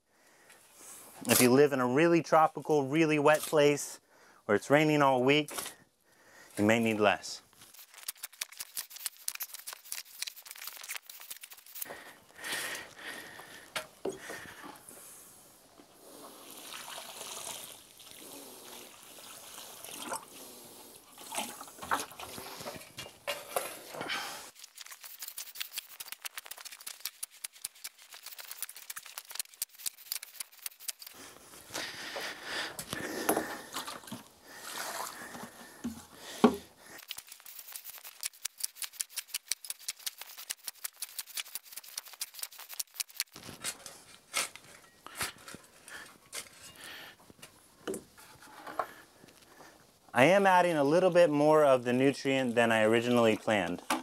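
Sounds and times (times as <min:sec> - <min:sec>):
water pouring onto soil: 0:16.1 - 0:20.5, 0:24.5 - 0:31.1.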